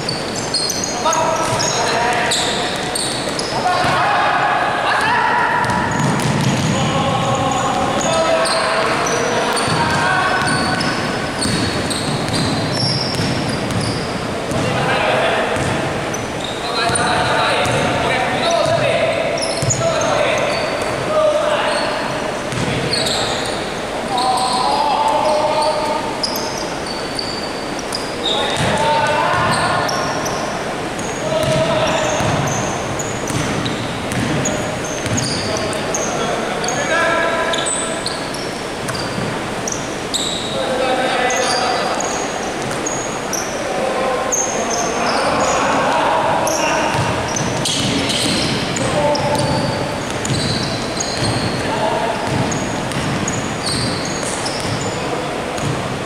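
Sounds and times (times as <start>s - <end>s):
sneakers squeaking: 0.0s - 56.0s
players calling out: 0.1s - 55.8s
ball bouncing on wooden court: 1.4s - 4.1s, 5.0s - 14.9s, 15.5s - 15.9s, 16.9s - 21.0s, 22.5s - 23.0s, 28.5s - 30.0s, 31.0s - 35.7s, 46.8s - 55.0s, 55.6s - 55.9s.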